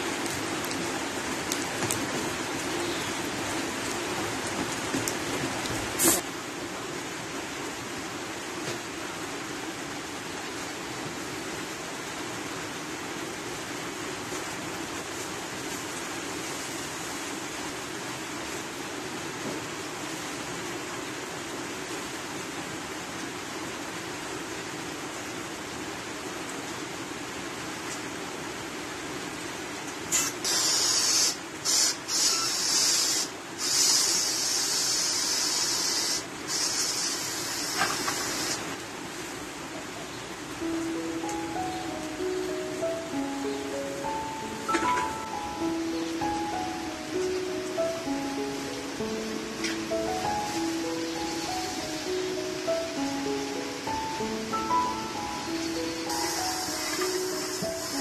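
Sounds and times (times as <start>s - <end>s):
light rain hiss: 0.0s - 58.0s
gas hissing from nozzle: 6.0s - 6.2s, 30.1s - 38.6s.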